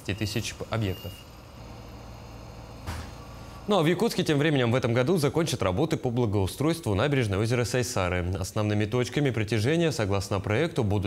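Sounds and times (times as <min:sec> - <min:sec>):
low mechanical hum of machinery: 0:00.0 - 0:11.0.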